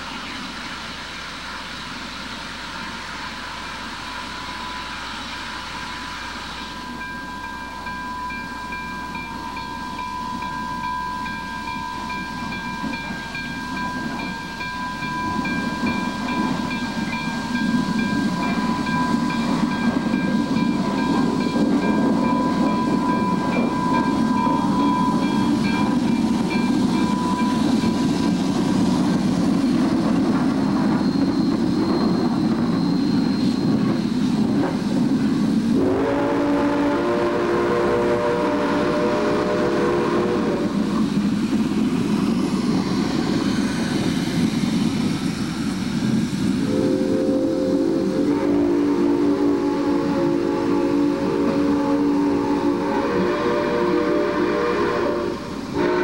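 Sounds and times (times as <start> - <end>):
steam locomotive rumble: 0.0 - 56.0
wheel flanges squealing: 11.3 - 34.9.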